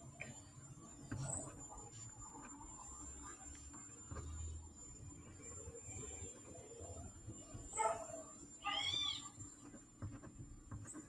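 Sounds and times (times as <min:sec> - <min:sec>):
faint background noise: 0:00.0 - 0:11.0
animal calls: 0:07.8 - 0:09.3.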